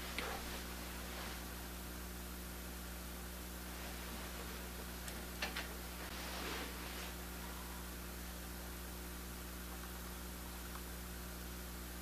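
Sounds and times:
electrical hum and hiss: 0.0s - 12.0s.

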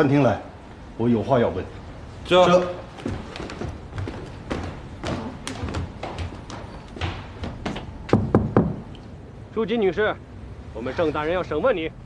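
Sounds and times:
footsteps of men walking: 1.8s - 9.0s.

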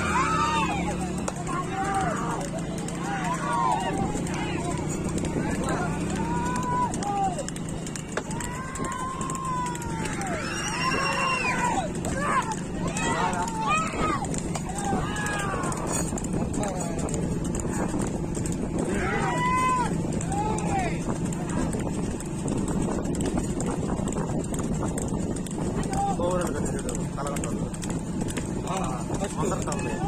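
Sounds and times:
men yelling drawn-out calls: 0.0s - 22.3s, 25.7s - 27.5s, 28.4s - 30.0s
hoofbeats on road: 0.0s - 30.0s.

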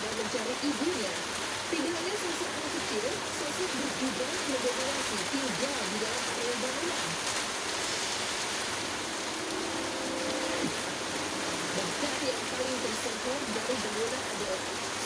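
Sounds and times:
steady hiss: 0.1s - 15.0s
held low tone: 8.9s - 12.6s
muffled wavering voice: 9.1s - 14.4s.

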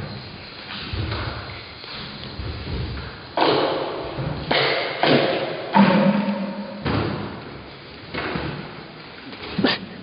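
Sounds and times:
heavy wooden thuds with echo: 2.4s - 8.9s.

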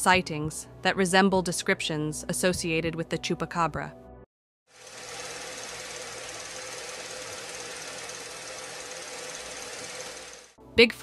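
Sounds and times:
fast mechanical rattle with hiss: 4.7s - 10.6s.

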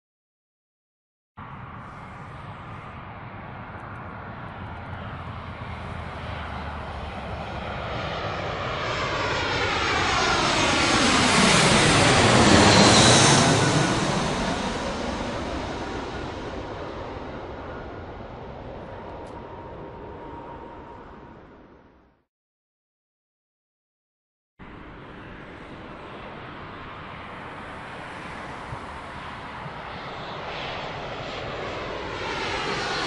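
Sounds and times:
airplane flying past: 1.4s - 22.2s, 24.6s - 33.0s.

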